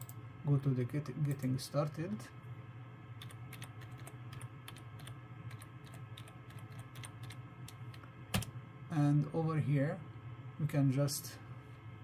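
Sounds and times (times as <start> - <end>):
computer keyboard typing: 3.2 - 8.5.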